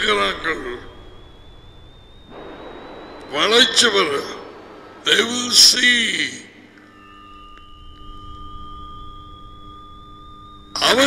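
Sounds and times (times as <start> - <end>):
high electronic whine rising: 0.0 - 11.0
low electronic tone: 0.0 - 11.0.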